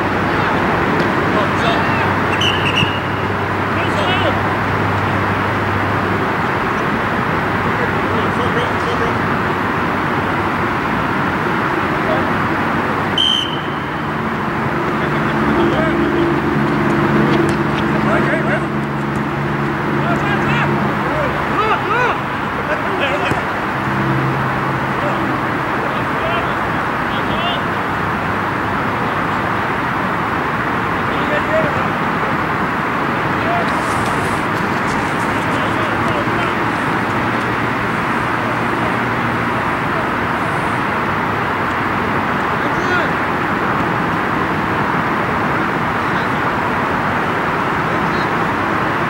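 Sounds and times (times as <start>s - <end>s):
steady background roar: 0.0s - 49.0s
distant shouts from players: 1.5s - 4.4s
high whistle: 2.3s - 3.3s, 13.2s - 14.0s.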